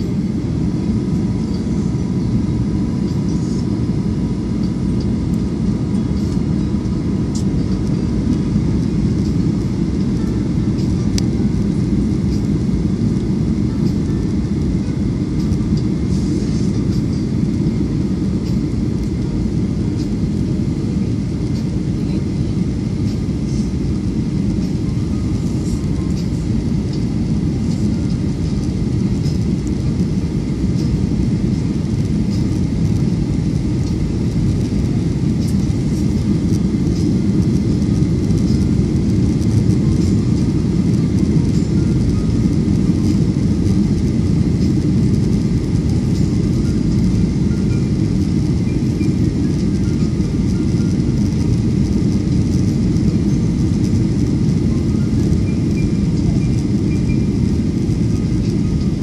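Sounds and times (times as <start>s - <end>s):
faint steady whine: 0.0s - 59.0s
jet engine rumble in cabin: 0.0s - 59.0s.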